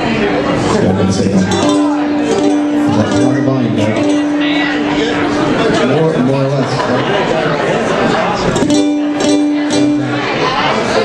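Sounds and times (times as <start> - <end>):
ukulele strumming: 0.6 - 6.8, 8.4 - 11.0.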